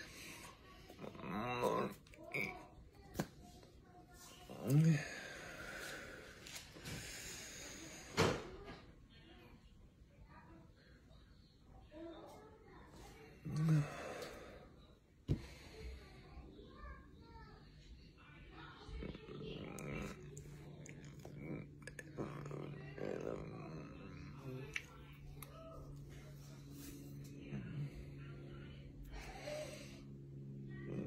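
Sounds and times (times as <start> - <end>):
steady low hum: 0.0 - 31.0.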